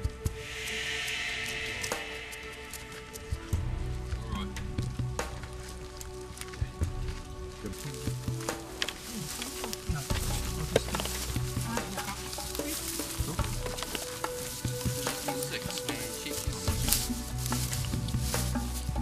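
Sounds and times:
dry grass crackling under feet: 0.0 - 19.0
low rumble: 0.3 - 6.1.

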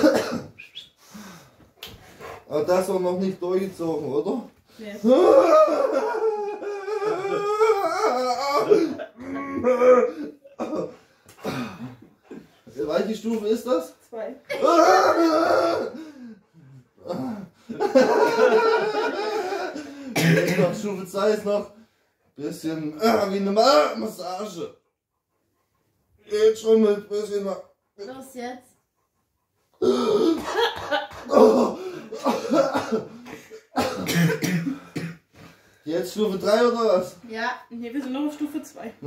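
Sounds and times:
person coughing: 0.0 - 0.6, 10.6 - 12.5, 14.5 - 15.9, 19.3 - 20.9, 29.8 - 30.7, 31.3 - 35.3
man's wordless vocal reaction: 5.0 - 10.9, 14.5 - 16.2, 29.8 - 32.8.

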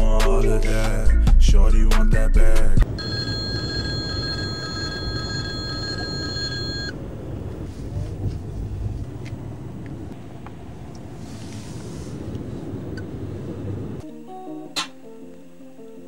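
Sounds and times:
car road rumble: 2.8 - 14.0.

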